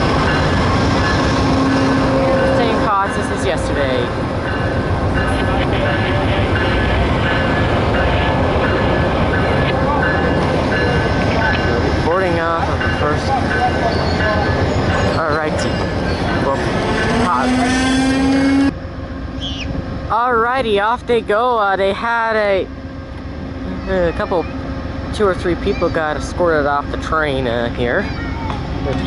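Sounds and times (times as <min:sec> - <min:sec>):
train engine rumbling: 0:00.0 - 0:29.0.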